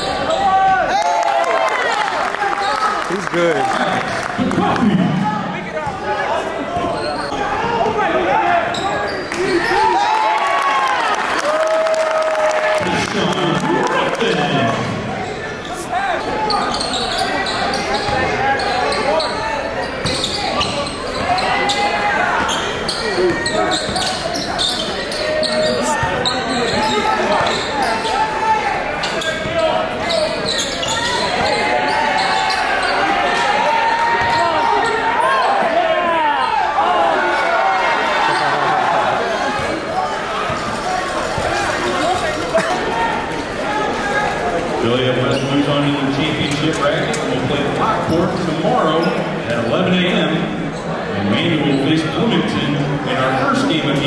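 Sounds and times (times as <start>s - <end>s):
crowd chatter and shouts: 0.0s - 54.0s.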